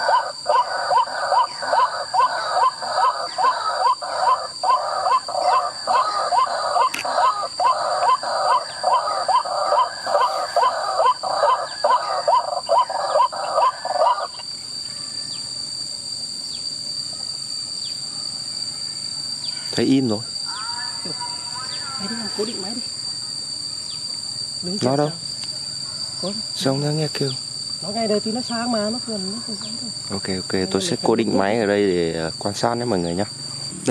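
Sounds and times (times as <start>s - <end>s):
high insect drone: 0.0s - 33.9s.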